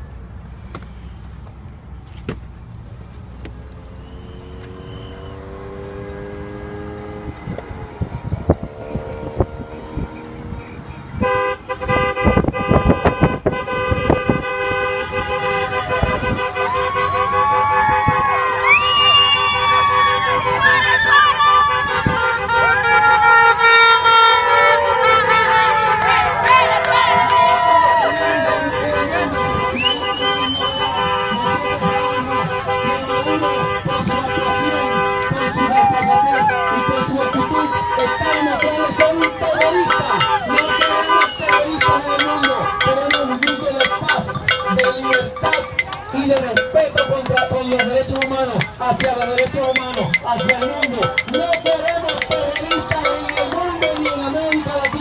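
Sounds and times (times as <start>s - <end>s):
car engine and tyres rumble: 0.0s - 55.0s
crowd shouting and cheering: 15.0s - 55.0s.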